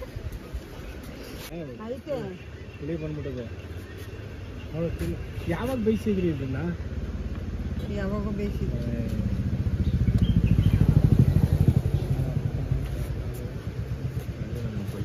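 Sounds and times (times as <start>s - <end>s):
motorcycle engine running: 6.7s - 15.0s.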